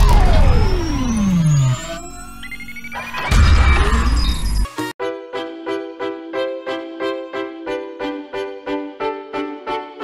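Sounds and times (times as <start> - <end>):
rising electronic tones: 0.0 - 4.7.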